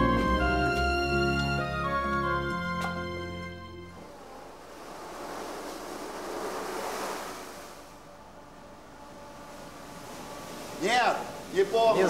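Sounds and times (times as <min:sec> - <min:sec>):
rushing noise: 0:04.0 - 0:11.7.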